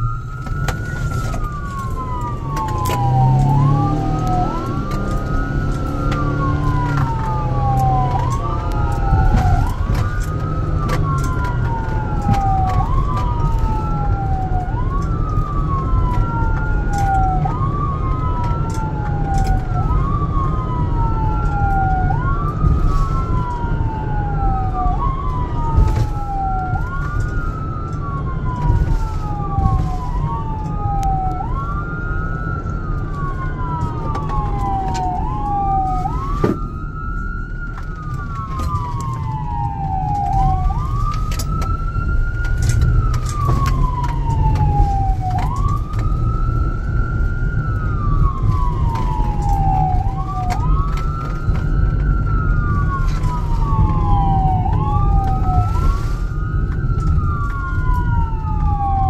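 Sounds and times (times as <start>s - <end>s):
electronic siren wailing: 0.0s - 59.0s
engine and road rumble: 0.0s - 59.0s.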